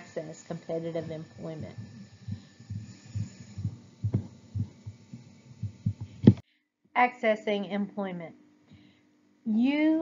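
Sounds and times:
soft low thumps: 0.6s - 6.4s.

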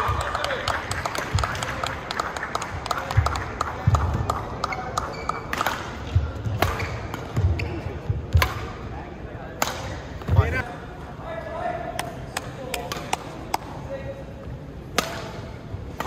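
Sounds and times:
rackets hitting shuttlecock: 3.0s - 8.8s, 9.6s - 10.6s, 14.8s - 16.0s
shoe squeaks on court: 4.7s - 5.5s.

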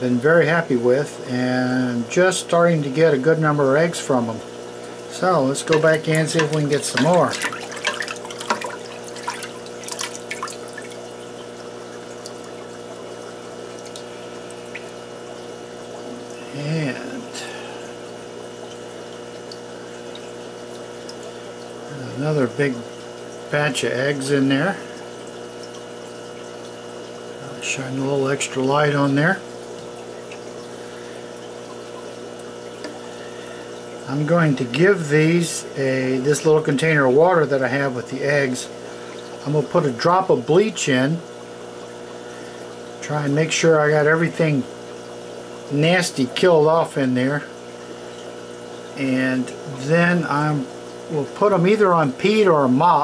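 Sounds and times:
steady electrical hum: 0.0s - 53.0s
water dripping: 4.5s - 21.9s, 24.7s - 27.7s, 28.3s - 34.1s, 38.6s - 39.7s
water sloshing and splashing: 4.6s - 16.5s.

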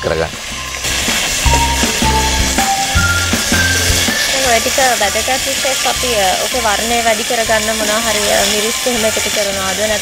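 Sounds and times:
background music: 0.0s - 10.0s
seafood sizzling in hot oil: 0.0s - 10.0s.

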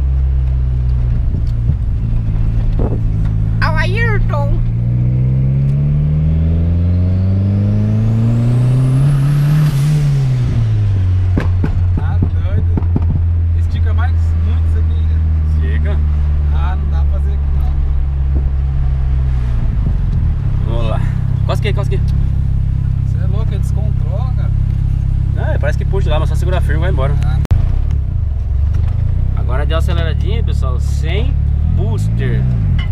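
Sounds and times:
car engine revving: 0.0s - 32.9s.

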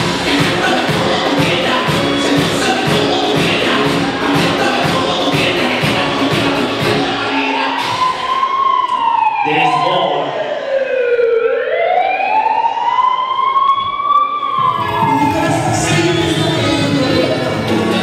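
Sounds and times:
dance music beat: 0.0s - 9.0s, 14.6s - 18.0s
siren wail: 6.8s - 16.8s.

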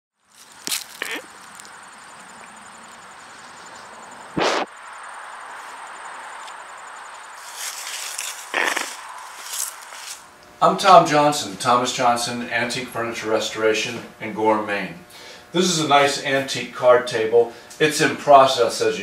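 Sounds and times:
outdoor background hiss: 0.2s - 19.0s
alpacas noisy bursts: 0.8s - 1.4s, 4.3s - 4.7s, 8.1s - 10.2s.

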